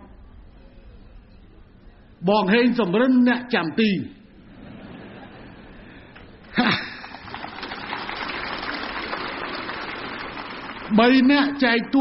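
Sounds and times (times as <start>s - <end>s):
crowd applauding: 6.6s - 11.3s.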